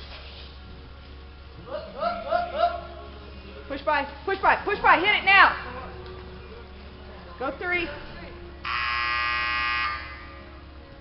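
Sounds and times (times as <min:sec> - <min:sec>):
electronic buzzer: 0:08.6 - 0:10.4.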